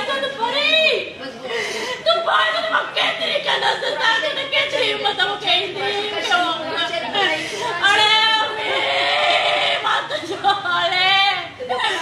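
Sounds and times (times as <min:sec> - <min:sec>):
women crying: 0:00.0 - 0:12.0.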